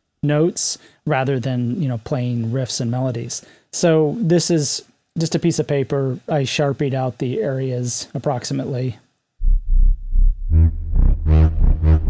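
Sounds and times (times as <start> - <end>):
deep synthesizer bass note: 9.4 - 12.0
pulsing synthesizer notes: 9.4 - 12.0.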